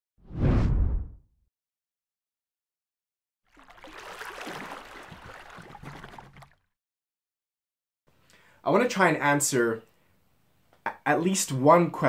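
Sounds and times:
deep whoosh: 0.2s - 1.2s.

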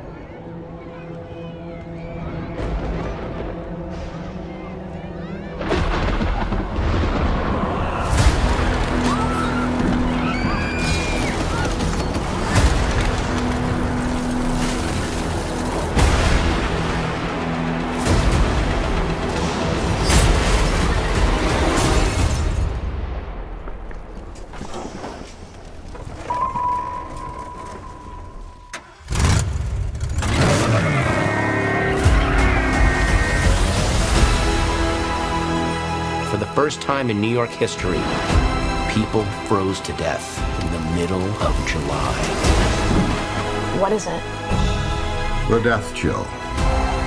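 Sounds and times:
music: 0.0s - 24.1s, 26.2s - 47.0s
car engine revving: 28.8s - 34.2s.

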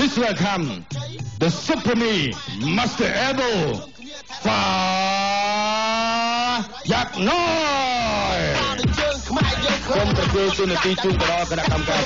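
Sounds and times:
man calling out a long name: 0.0s - 5.1s, 6.7s - 8.8s.

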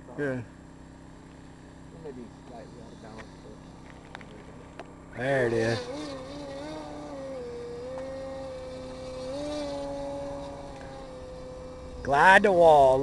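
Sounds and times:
model plane motor buzzing: 0.0s - 13.0s.

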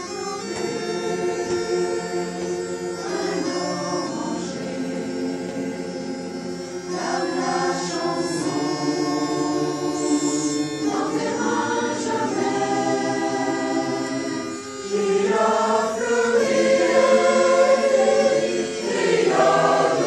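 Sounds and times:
mixed choir singing: 0.0s - 20.0s.

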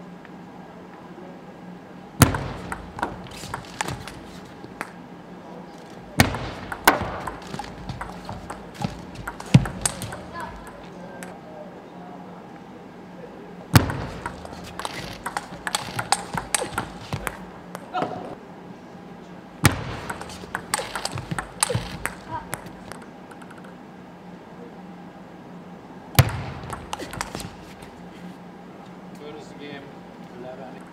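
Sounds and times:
table tennis ball clicking: 2.3s - 5.0s, 5.8s - 11.3s, 13.8s - 17.9s, 20.0s - 23.8s, 26.2s - 27.8s.

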